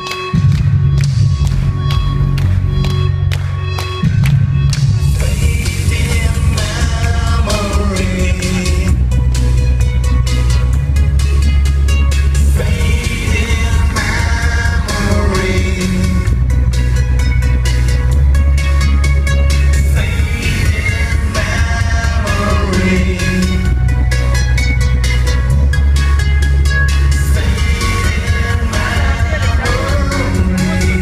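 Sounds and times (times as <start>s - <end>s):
bass-heavy electronic music: 0.0s - 31.0s
male singer singing: 5.2s - 9.0s, 12.5s - 16.4s, 19.9s - 23.7s, 27.2s - 31.0s.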